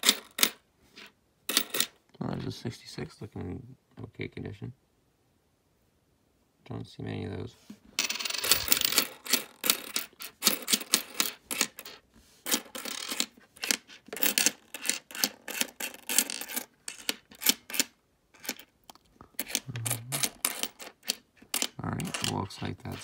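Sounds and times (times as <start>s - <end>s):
coins clicking and clinking: 0.0s - 0.6s, 1.5s - 2.0s, 8.0s - 18.7s, 19.4s - 23.0s.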